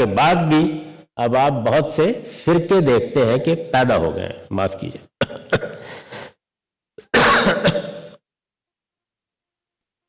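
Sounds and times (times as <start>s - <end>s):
man clearing his throat: 5.2s - 6.1s, 7.0s - 8.2s.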